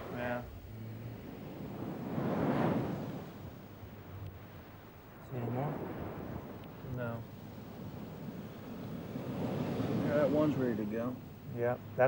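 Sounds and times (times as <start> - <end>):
wave breaking and washing in: 0.0 - 12.0.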